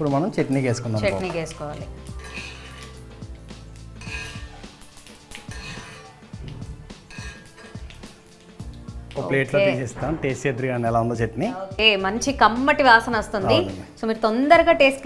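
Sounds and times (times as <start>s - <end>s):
background music: 0.0s - 15.0s
metal spoon scraping a pan: 1.1s - 8.6s.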